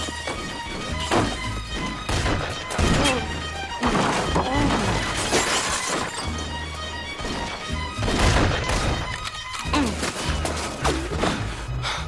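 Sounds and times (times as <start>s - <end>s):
gunshot impacts and shattering: 8.0s - 9.1s.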